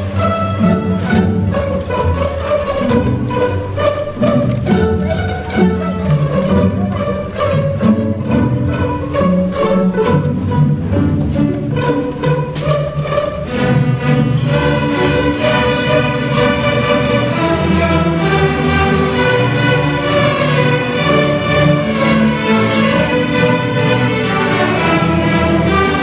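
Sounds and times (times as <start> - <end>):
string orchestra playing: 0.0 - 26.0.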